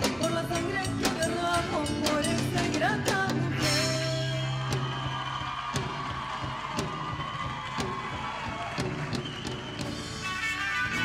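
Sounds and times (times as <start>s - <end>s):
live band with drums and guitar: 0.0s - 11.0s.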